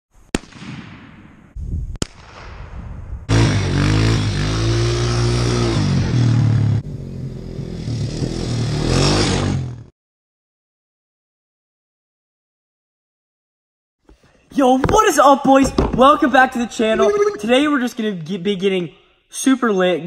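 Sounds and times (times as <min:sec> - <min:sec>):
rifle shots with echo: 0:00.3 - 0:02.6
dirt bike engine revving: 0:03.3 - 0:09.9.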